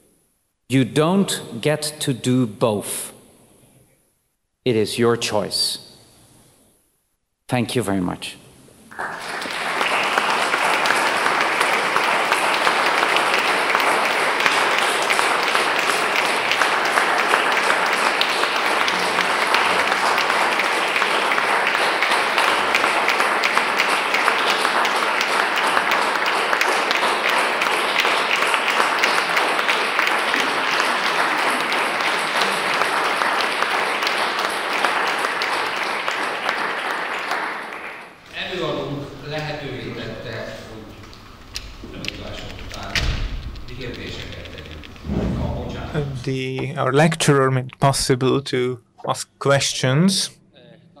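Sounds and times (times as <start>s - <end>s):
audience applauding: 8.9s - 45.0s.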